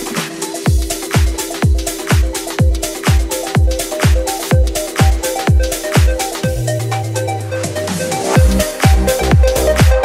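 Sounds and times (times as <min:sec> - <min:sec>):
four-on-the-floor kick drum: 0:00.7 - 0:06.7, 0:08.4 - 0:10.0
repeating synth riff: 0:02.6 - 0:10.0
held bass note: 0:06.4 - 0:09.8.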